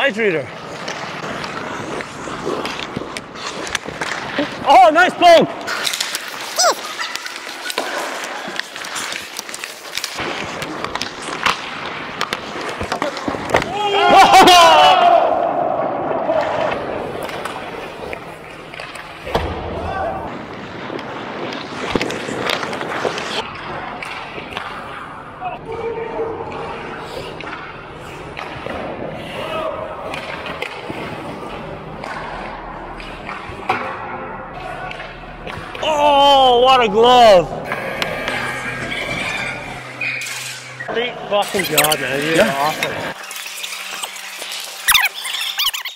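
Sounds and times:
players' voices: 0:00.0 - 0:09.9, 0:34.5 - 0:40.1, 0:40.7 - 0:43.2
sticks and puck clacking: 0:00.0 - 0:14.7, 0:16.1 - 0:19.5, 0:20.6 - 0:45.9
skate blades scraping ice: 0:00.0 - 0:15.4, 0:16.0 - 0:19.4, 0:20.3 - 0:25.3, 0:26.4 - 0:34.0, 0:37.2 - 0:45.9
loud shout: 0:13.7 - 0:16.7.

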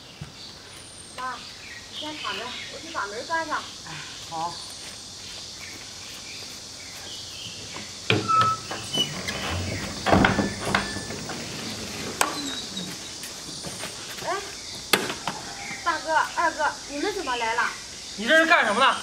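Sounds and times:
wooden door knocks and clatter: 0:08.1 - 0:11.4.

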